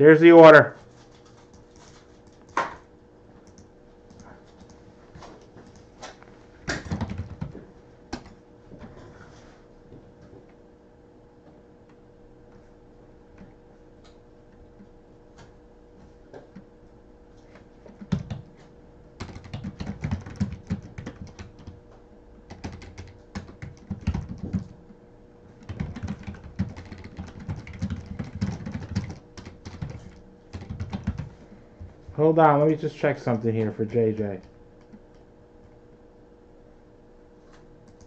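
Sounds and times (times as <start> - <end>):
typing on a computer keyboard: 3.4 - 4.8, 6.7 - 7.6, 17.9 - 18.5, 19.2 - 21.8, 22.5 - 24.8, 25.6 - 31.3.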